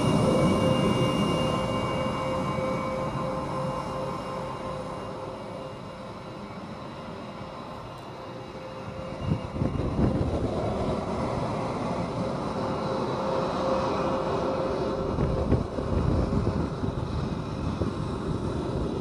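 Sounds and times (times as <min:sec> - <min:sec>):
jet engine whine: 0:00.0 - 0:19.0.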